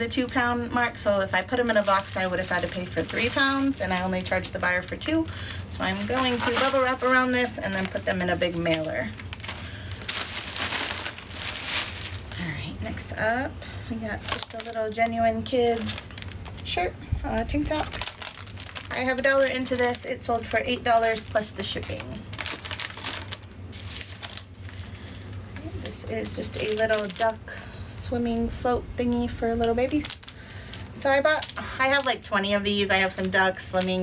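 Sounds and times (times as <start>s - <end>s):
bubble wrap crinkling: 0.0s - 13.4s, 14.0s - 27.6s, 29.2s - 34.0s.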